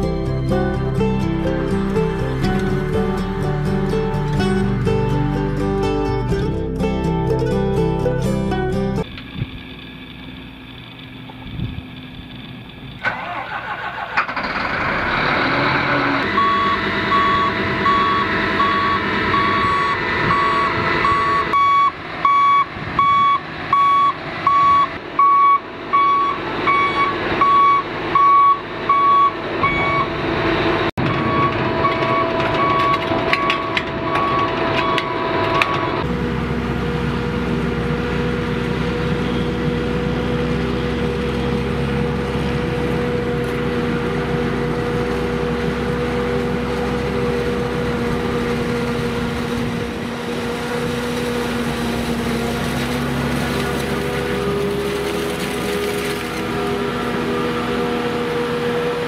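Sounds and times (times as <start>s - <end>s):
harvester engine drone: 0.0s - 59.0s
heavy machine engine running: 0.0s - 59.0s
reversing alarm beeping: 16.2s - 30.2s, 31.0s - 36.0s.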